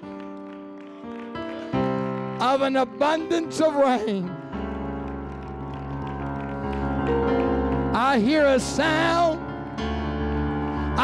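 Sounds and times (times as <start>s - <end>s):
keyboard sustained chords: 0.0s - 11.0s.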